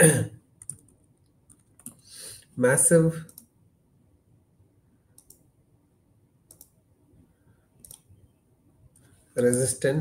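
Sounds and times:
faint mouse clicks: 0:00.6 - 0:02.0, 0:03.3 - 0:03.5, 0:05.1 - 0:05.5, 0:06.5 - 0:06.8, 0:07.8 - 0:08.2.

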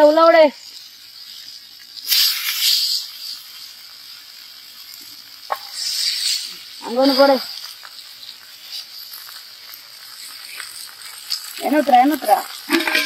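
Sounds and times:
fish deep-frying in hot oil: 0:00.0 - 0:13.0.

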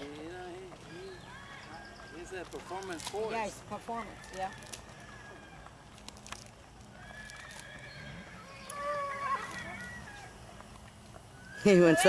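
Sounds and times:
horse neighing: 0:07.0 - 0:10.3.

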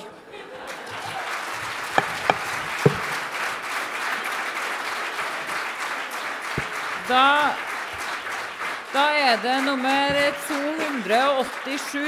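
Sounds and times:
audience applauding: 0:00.6 - 0:12.0
sharp knocks: 0:00.9 - 0:03.3, 0:06.6 - 0:06.8, 0:10.1 - 0:10.6.

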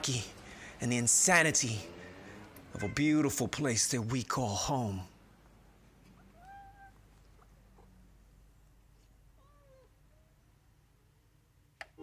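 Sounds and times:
faint short animal calls: 0:06.2 - 0:07.5.

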